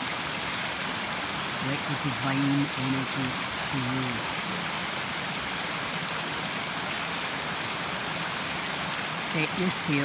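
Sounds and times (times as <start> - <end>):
stream rushing over rocks: 0.0 - 10.0.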